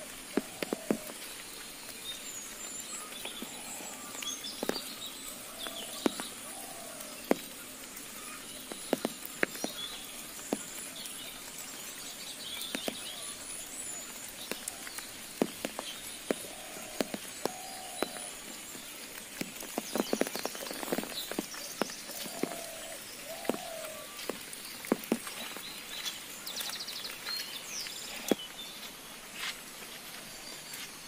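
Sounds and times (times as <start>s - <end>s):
hiss of light rain: 0.0s - 31.0s
raindrops tapping on umbrella: 0.0s - 31.0s.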